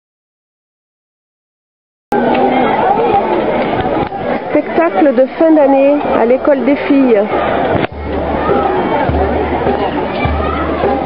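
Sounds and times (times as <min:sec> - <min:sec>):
audience chattering: 0:02.1 - 0:11.0.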